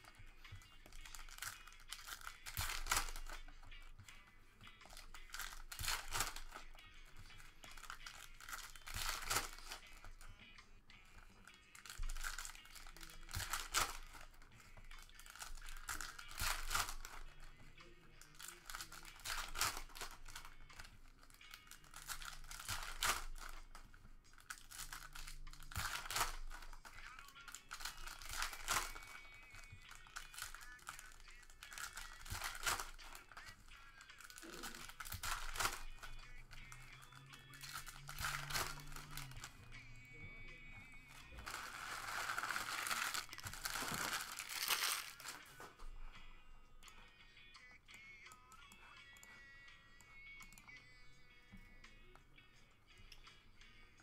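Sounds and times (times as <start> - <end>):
cards being handled: 0.0 - 46.2
foil wrappers crinkling and tearing: 0.8 - 3.5, 4.8 - 10.2, 11.7 - 17.6, 18.2 - 39.5, 41.2 - 45.5.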